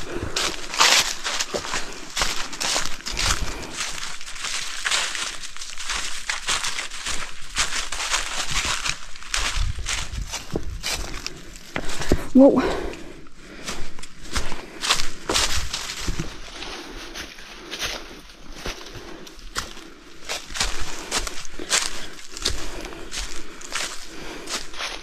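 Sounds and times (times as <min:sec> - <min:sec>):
footsteps on forest trail: 0:00.0 - 0:25.0.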